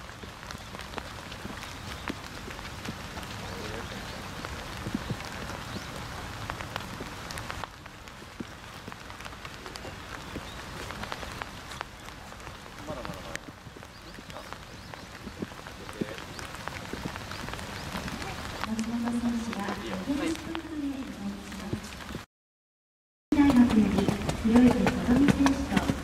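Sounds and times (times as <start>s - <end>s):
rain hiss: 0.0s - 22.2s
raindrop taps: 0.0s - 22.2s, 23.4s - 26.0s.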